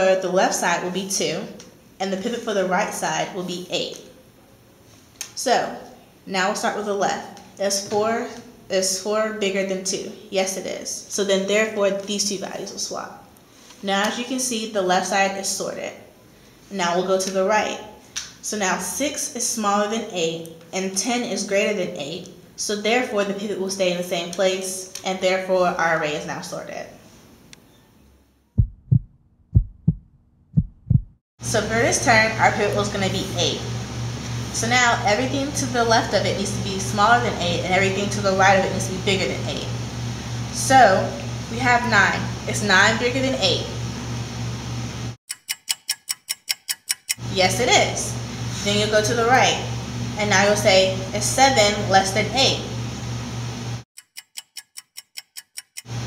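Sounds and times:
room hum: 0:00.0 - 0:45.2, 0:47.1 - 0:53.8
heartbeat double thumps: 0:28.6 - 0:31.2
fast ticking clock: 0:45.3 - 0:47.2, 0:54.0 - 0:55.9.

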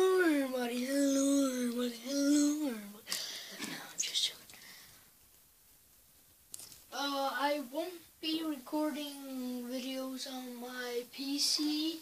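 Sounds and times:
person whispering: 0:03.6 - 0:04.6.

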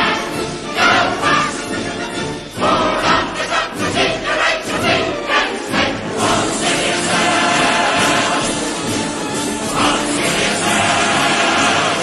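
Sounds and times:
large chorus singing: 0:00.0 - 0:12.0
orchestra playing: 0:00.0 - 0:12.0.

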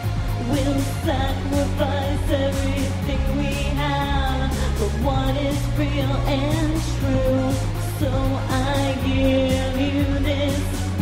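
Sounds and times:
woman singing into a microphone: 0:00.0 - 0:11.0.

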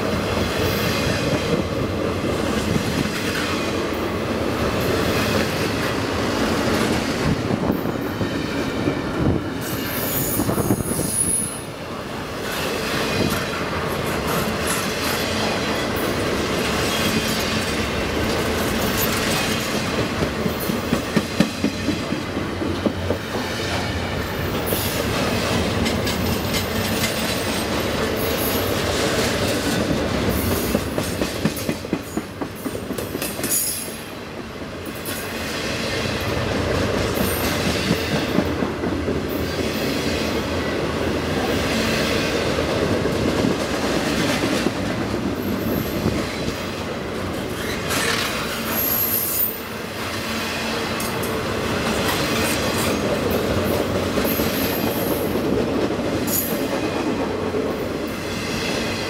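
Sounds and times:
train wheels rumbling on rails: 0:00.0 - 0:59.0.

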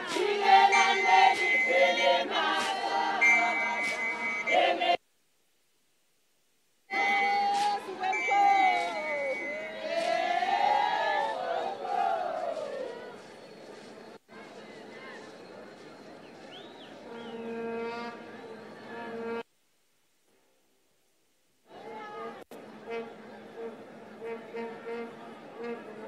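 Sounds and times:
high shrill notes: 0:00.0 - 0:05.0, 0:06.9 - 0:11.1
women singing and chanting: 0:00.0 - 0:05.0, 0:06.9 - 0:13.3.

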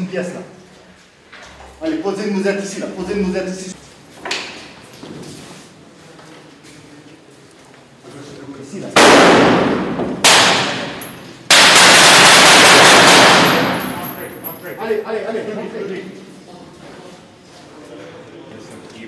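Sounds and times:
rifle shots indoors: 0:09.0 - 0:14.3.

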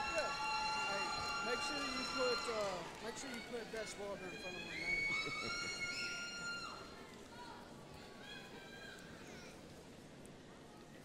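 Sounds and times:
crowd cheer with high call: 0:00.0 - 0:09.7.

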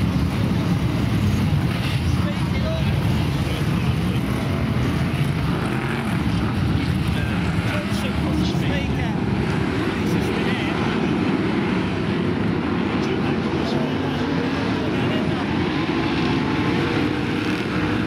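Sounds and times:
racing car engines running: 0:00.0 - 0:18.0.

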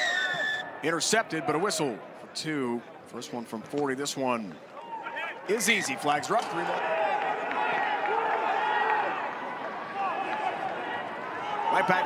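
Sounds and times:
stadium crowd noise: 0:00.0 - 0:12.0
people shouting and calling: 0:04.8 - 0:12.0.

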